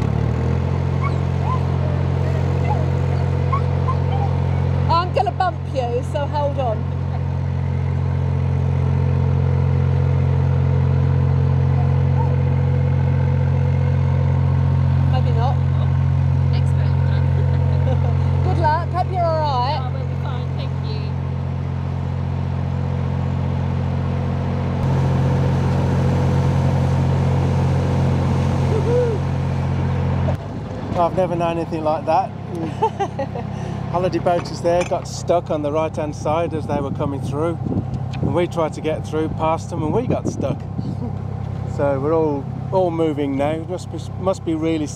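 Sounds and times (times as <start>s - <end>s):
diesel boat engine droning: 0.0s - 44.9s.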